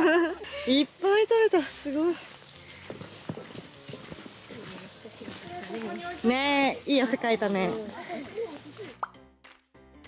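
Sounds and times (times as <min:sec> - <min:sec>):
light background music: 0:00.0 - 0:10.0
rising pop sound effect: 0:08.9 - 0:09.2.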